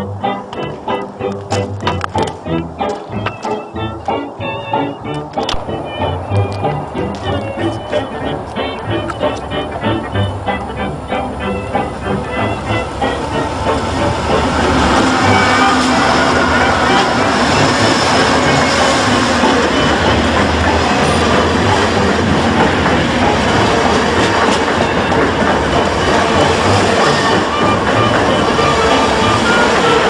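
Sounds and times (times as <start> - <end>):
diesel locomotive passing: 0.0 - 30.0
train cars rumbling: 0.0 - 30.0
wheels clacking on rails: 0.0 - 30.0.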